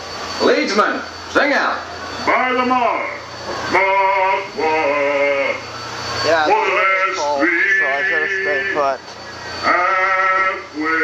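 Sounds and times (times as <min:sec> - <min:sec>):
man chanting long notes: 0:02.3 - 0:05.7, 0:06.5 - 0:08.9, 0:09.6 - 0:11.0.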